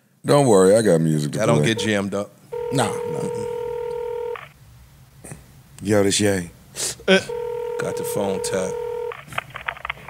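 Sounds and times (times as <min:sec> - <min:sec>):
man saying a word: 0:01.4 - 0:02.0
telephone line tone: 0:01.6 - 0:04.4, 0:07.3 - 0:09.2.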